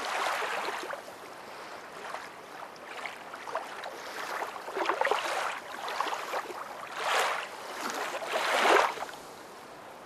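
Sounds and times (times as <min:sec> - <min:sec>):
water splashing and lapping: 0:00.0 - 0:09.4.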